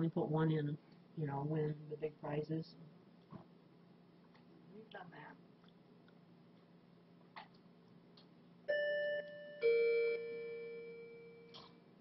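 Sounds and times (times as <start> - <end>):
two-note doorbell chime: 8.7 - 11.6.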